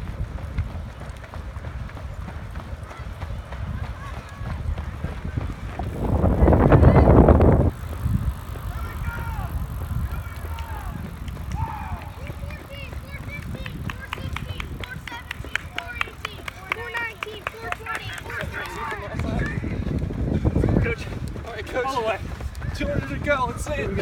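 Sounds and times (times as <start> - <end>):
footfalls clicking on track: 0.0 - 24.0
wind rumble on microphone: 0.0 - 24.0.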